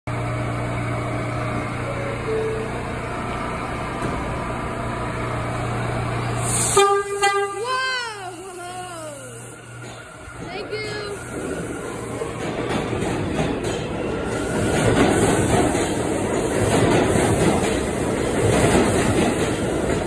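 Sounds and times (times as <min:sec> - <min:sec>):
subway train humming: 0:00.1 - 0:20.0
train horn blast: 0:06.5 - 0:08.0.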